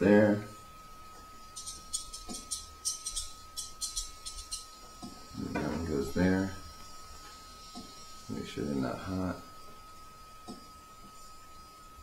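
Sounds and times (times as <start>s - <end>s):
faint high whine: 0.0s - 12.0s
high-pitched clicking and rattling: 1.6s - 5.2s.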